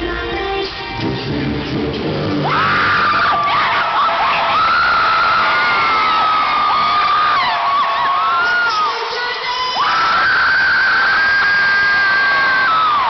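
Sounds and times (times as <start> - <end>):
concert music: 0.0 - 13.0
arena crowd cheering: 2.4 - 13.0
fans screaming: 2.4 - 13.0.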